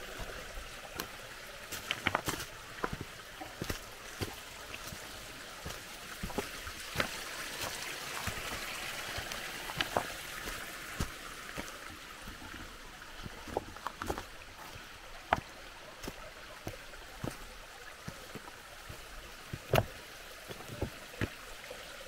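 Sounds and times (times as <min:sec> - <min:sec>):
footsteps on stony trail: 0:00.0 - 0:21.6
stream trickling: 0:00.0 - 0:22.0.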